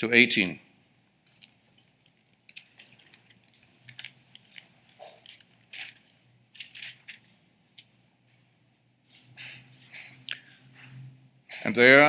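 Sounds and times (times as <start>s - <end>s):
thin paper pages rustling: 1.6s - 8.0s.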